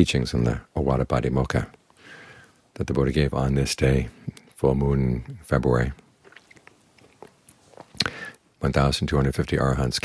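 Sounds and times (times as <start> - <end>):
mouth clicks and lip noises: 6.0 - 8.4.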